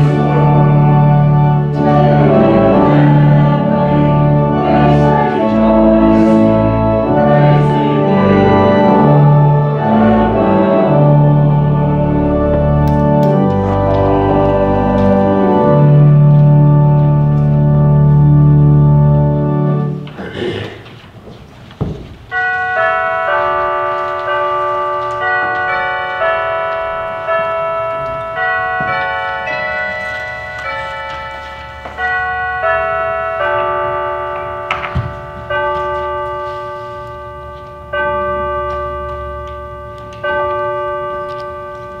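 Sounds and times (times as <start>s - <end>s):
bells ringing: 0.0s - 20.0s, 22.3s - 42.0s.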